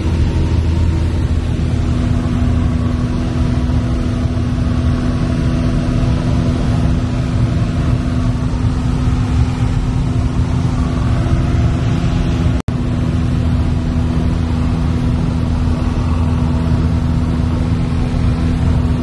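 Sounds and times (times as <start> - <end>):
airplane engine and propeller droning: 0.0 - 19.0.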